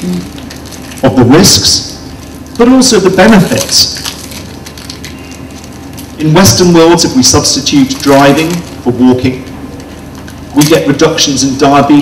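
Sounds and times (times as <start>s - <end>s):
faint crackle: 3.5s - 6.2s.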